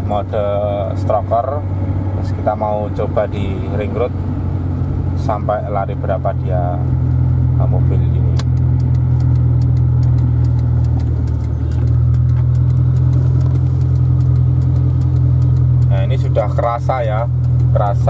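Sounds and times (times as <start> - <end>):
car engine drone from inside: 0.0 - 18.0
faint rapid ticking: 8.5 - 18.0.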